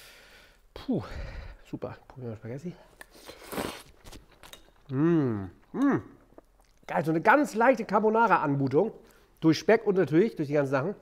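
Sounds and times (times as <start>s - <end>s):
person slurping pasta: 3.0s - 4.2s.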